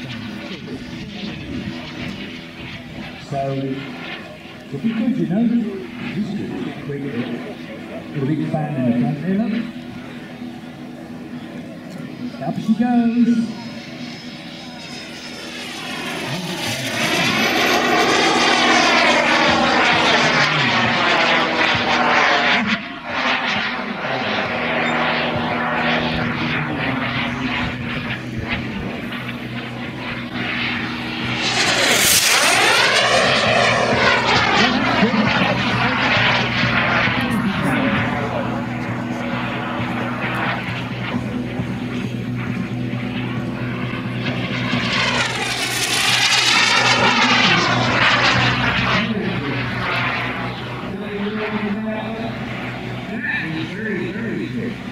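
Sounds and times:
model jet turbine whine: 0:00.0 - 0:54.9.

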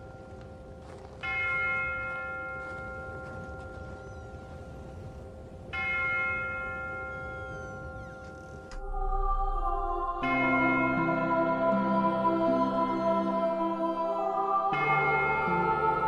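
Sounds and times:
steady held tone: 0:05.8 - 0:16.0.

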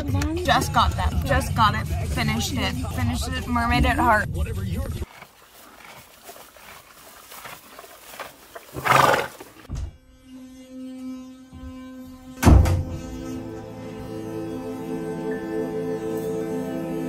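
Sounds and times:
soft ambient music: 0:10.1 - 0:17.0.

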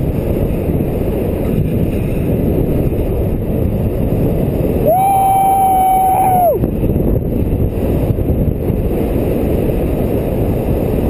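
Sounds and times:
wind rushing on microphone: 0:00.0 - 0:11.0.

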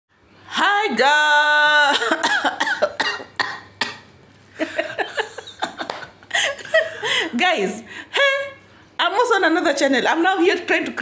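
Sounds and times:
person coughing: 0:01.9 - 0:04.1
person laughing: 0:04.6 - 0:07.3.

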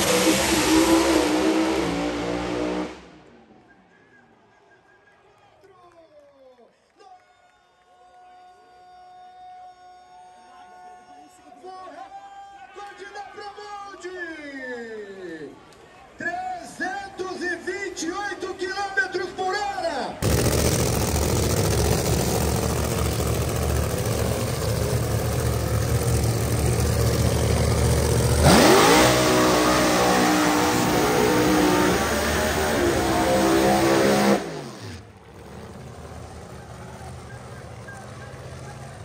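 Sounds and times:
drag car engine revving: 0:00.0 - 0:03.3, 0:20.2 - 0:39.0.

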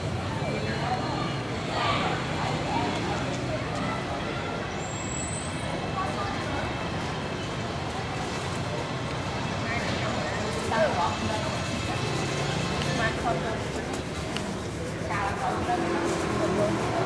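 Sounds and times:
city street noise: 0:00.0 - 0:17.0.

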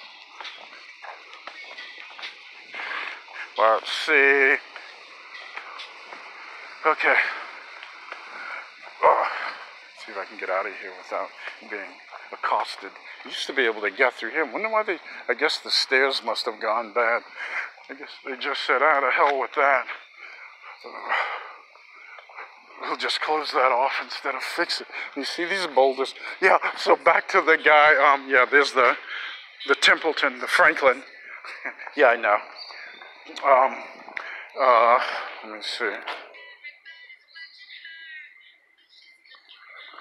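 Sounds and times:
footsteps on paved path: 0:00.0 - 0:22.8, 0:23.4 - 0:36.4
person speaking: 0:02.8 - 0:04.7.

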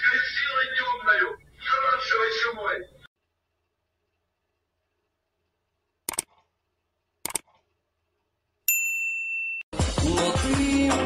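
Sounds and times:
mouse clicks: 0:06.1 - 0:06.4, 0:07.2 - 0:07.6
loud music: 0:09.7 - 0:11.0.

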